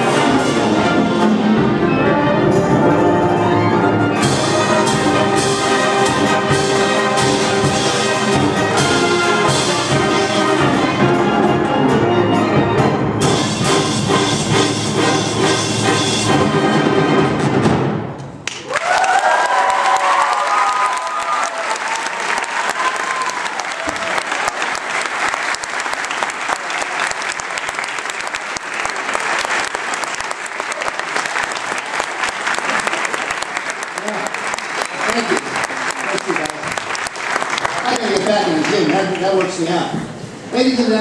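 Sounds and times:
audience applause: 0:18.4 - 0:39.7
cheers and whoops: 0:18.6 - 0:24.8.

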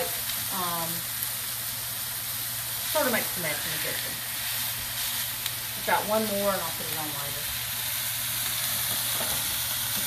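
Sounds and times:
fries frying in oil: 0:00.0 - 0:10.0
patties sizzling in skillet: 0:00.0 - 0:10.0.

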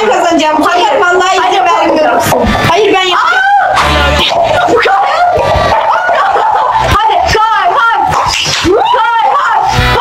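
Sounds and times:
high-pitched voices: 0:00.0 - 0:10.0.

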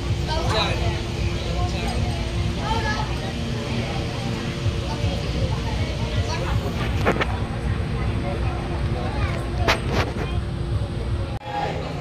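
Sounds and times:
faint background voices: 0:00.0 - 0:12.0
low steady rumbling: 0:00.0 - 0:12.0.

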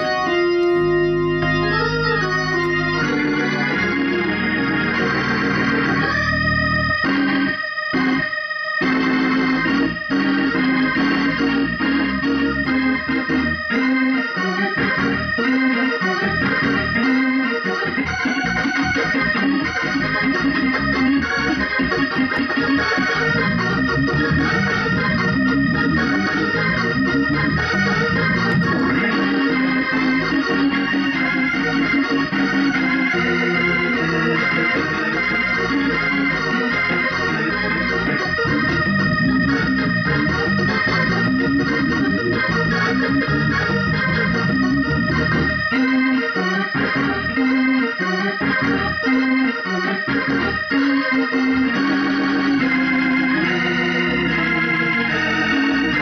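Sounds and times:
organ through rotating speaker: 0:00.0 - 0:56.0.

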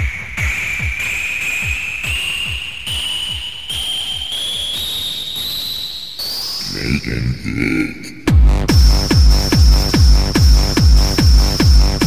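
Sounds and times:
kick drum: 0:00.0 - 0:05.2, 0:08.3 - 0:12.0.

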